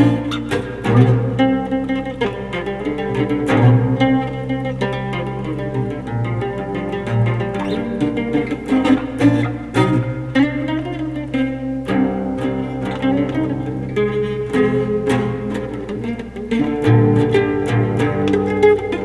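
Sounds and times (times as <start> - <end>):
mandocello picked melody: 0.0 - 19.0.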